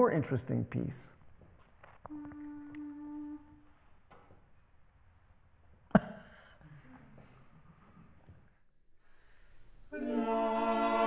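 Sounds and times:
person humming a steady note: 2.1 - 3.7.

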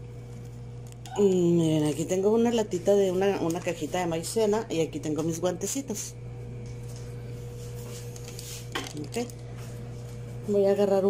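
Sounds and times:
low electrical hum with whine: 0.0 - 11.0.

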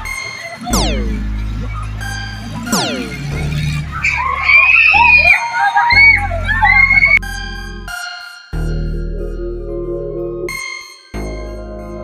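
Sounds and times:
electronic keyboard tones: 0.0 - 4.6
background music with bass beat: 0.0 - 12.0
riders screaming: 2.4 - 7.2.

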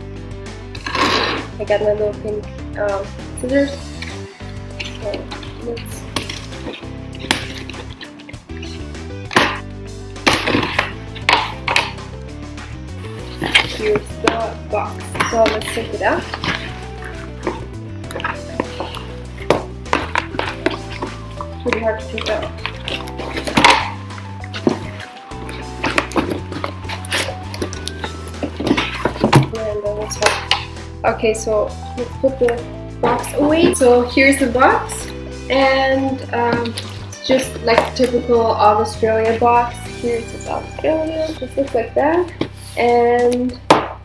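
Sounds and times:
background music: 0.0 - 44.0
scissors cutting packing tape: 22.2 - 29.5.

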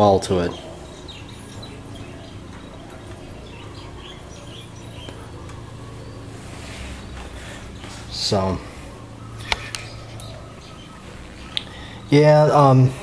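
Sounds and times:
bird chirps: 0.0 - 13.0
low hum: 0.0 - 13.0.

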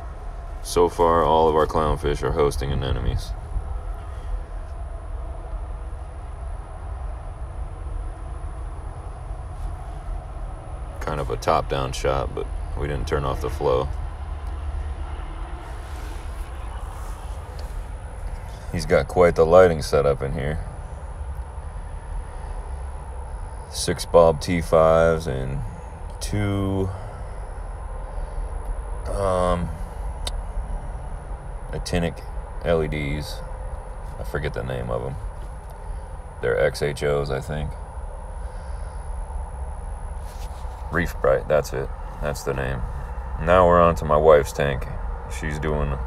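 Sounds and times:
aquarium pumps humming: 0.0 - 46.0
faint high whine: 0.0 - 46.0.

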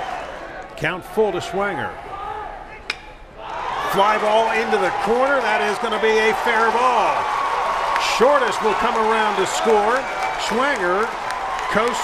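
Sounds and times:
crowd noise: 0.0 - 12.0
baseball bat crack: 2.8 - 3.2.

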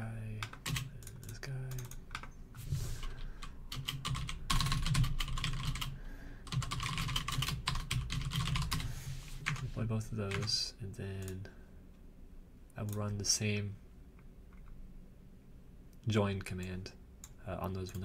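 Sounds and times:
computer keyboard typing: 0.4 - 2.4, 3.1 - 8.8, 17.2 - 18.0.

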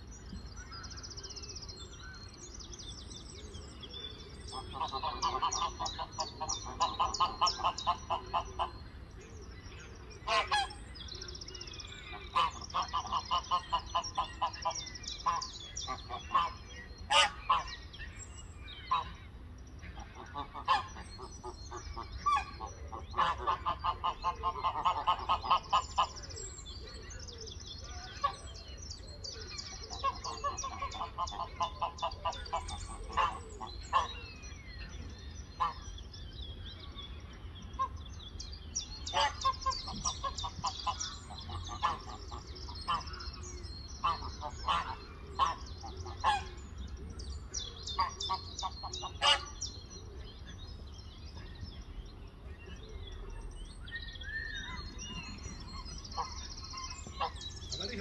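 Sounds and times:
songbirds singing: 0.0 - 58.0
geese honking: 4.5 - 8.8, 10.2 - 10.8, 12.3 - 17.7, 20.1 - 21.0, 21.7 - 26.2, 29.9 - 34.2, 39.1 - 46.6, 48.0 - 49.6, 56.2 - 58.0.

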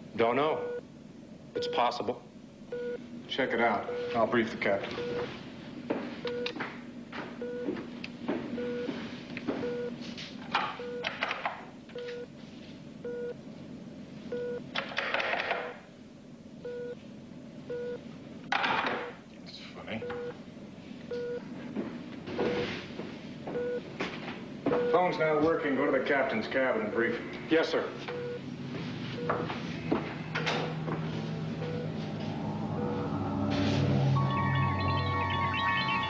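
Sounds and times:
low steady hum: 0.0 - 15.0, 15.8 - 36.0
short electronic beeps: 34.2 - 36.0.

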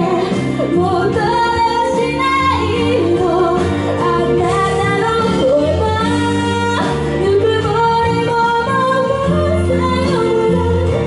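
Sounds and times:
amplified instrumental accompaniment: 0.0 - 11.0
woman singing into a microphone: 0.0 - 11.0.

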